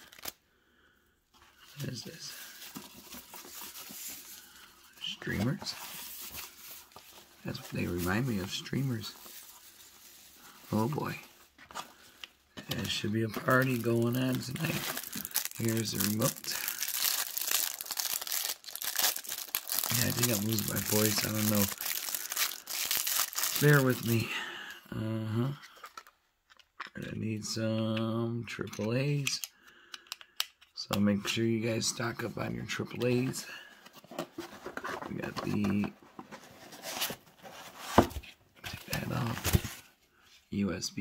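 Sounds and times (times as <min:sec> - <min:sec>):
plastic wrapper crinkling: 0:00.0 - 0:00.4, 0:01.7 - 0:24.2.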